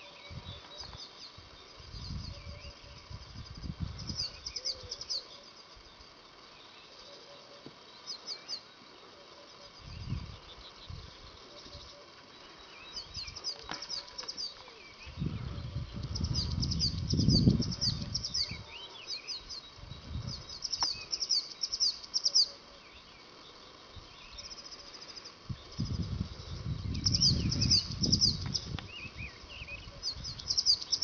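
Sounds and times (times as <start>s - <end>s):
small birds chirping: 0.0s - 31.0s.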